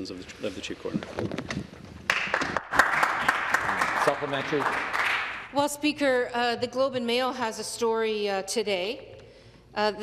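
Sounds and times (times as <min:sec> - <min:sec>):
small group applauding: 0:02.1 - 0:05.5.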